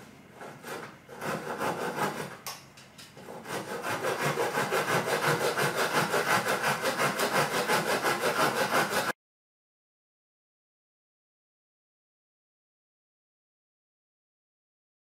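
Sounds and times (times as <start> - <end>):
hand saw cutting wood: 0.4 - 2.4, 3.2 - 9.2.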